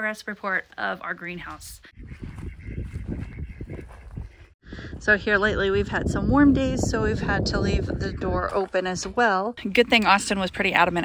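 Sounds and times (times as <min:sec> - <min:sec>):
ducks quacking: 0:01.4 - 0:04.6
wind buffeting microphone: 0:01.5 - 0:11.0.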